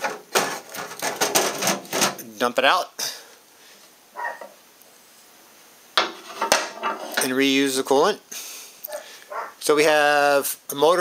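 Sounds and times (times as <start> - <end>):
dog barking: 4.2 - 4.6, 8.9 - 9.6.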